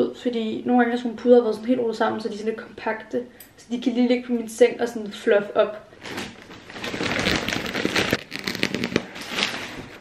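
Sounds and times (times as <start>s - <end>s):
plastic wrapping crinkling: 6.0s - 10.0s.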